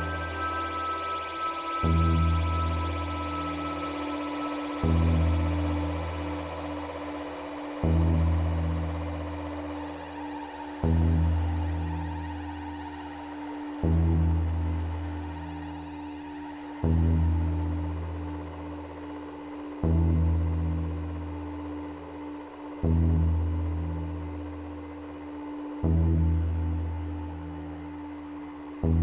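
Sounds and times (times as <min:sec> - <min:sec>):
ambient electronic music: 0:00.0 - 0:29.0
steady held synth tone: 0:00.0 - 0:29.0
deep bass note: 0:19.8 - 0:21.3, 0:25.8 - 0:27.4.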